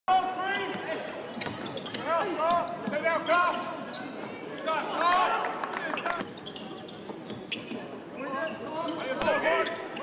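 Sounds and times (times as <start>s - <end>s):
shoes squeaking on hardwood: 0.8s - 4.8s, 5.9s - 10.0s.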